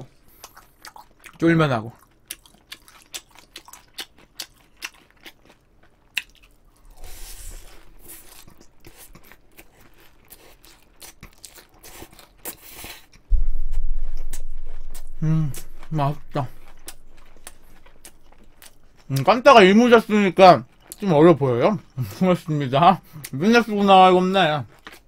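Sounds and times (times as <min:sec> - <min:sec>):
wet chewing and lip smacks: 0:00.3 - 0:06.9, 0:07.6 - 0:13.3, 0:16.7 - 0:19.3, 0:20.6 - 0:21.1
low rumble on microphone: 0:13.3 - 0:19.1.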